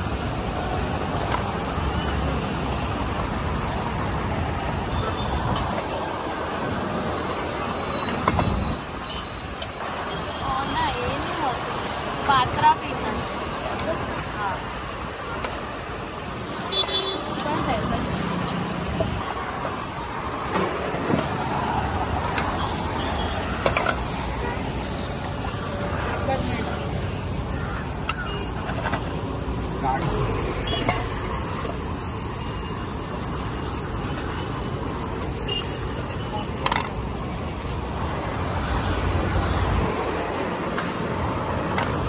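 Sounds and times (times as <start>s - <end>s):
road traffic: 0.0s - 42.0s.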